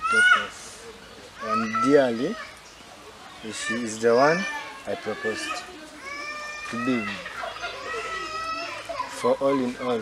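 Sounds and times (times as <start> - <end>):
children shouting: 0.0 - 0.6, 1.4 - 2.6, 3.2 - 10.0.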